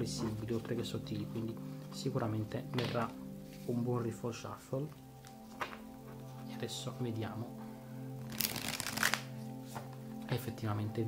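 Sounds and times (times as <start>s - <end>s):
background music: 0.0s - 11.0s
cards riffle shuffling: 8.3s - 9.8s.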